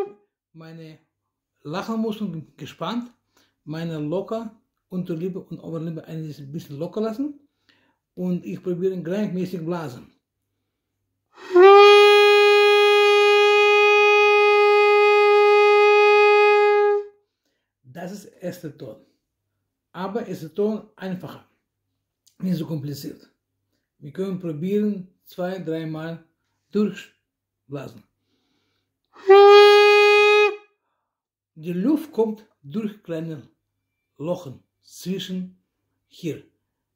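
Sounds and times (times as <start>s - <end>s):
saxophone mouthpiece long note: 11.4s - 17.1s, 29.2s - 30.6s.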